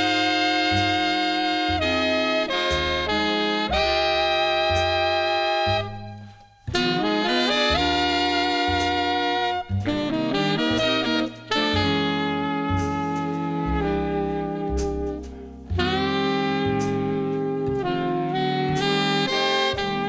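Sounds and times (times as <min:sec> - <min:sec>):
jazz band playing: 0:00.0 - 0:20.0.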